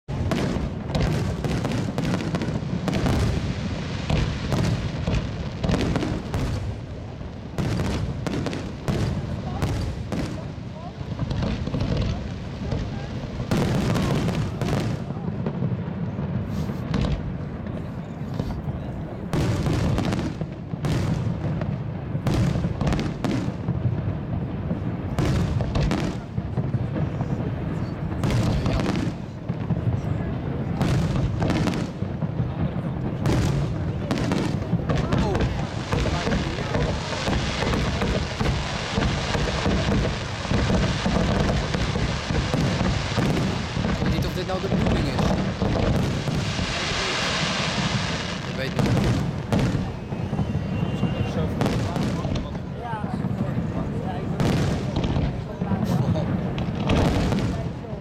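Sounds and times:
fireworks bursts and bangs: 0.1 - 58.0.

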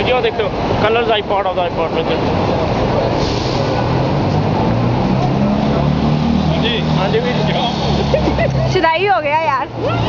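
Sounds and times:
road traffic noise: 0.0 - 10.0
vehicle engines droning: 0.0 - 10.0.

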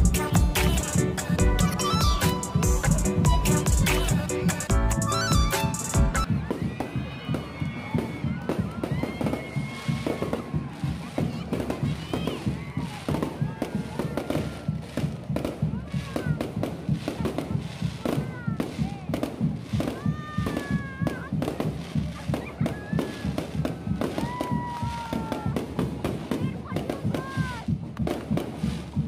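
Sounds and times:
fireworks bangs and crackles: 0.0 - 29.0.

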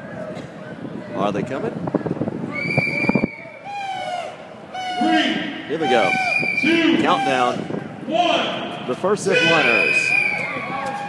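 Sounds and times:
long high whistle: 2.5 - 6.8, 9.4 - 10.6
crowd shouting and whooping: 9.3 - 11.0.

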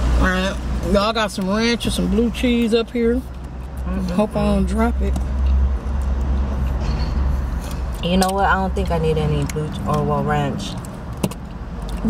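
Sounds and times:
car engine idling rumble: 0.0 - 12.0.

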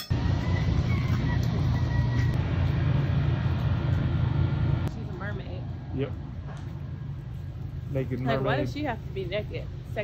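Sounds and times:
low street rumble: 0.1 - 10.0.

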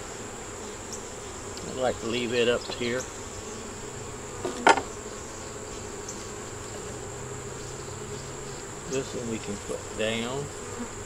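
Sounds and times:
honeybees humming: 0.0 - 11.0
hive frame knock: 4.4 - 5.0.

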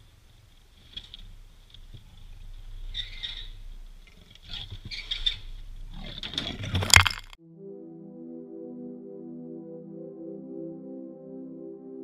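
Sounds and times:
rustles and clatters: 0.3 - 7.4.

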